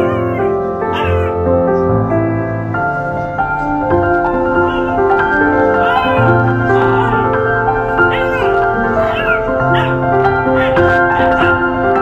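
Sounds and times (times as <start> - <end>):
puppy whining: 0.0 - 1.4, 3.6 - 11.8
background music with held notes: 0.0 - 12.0.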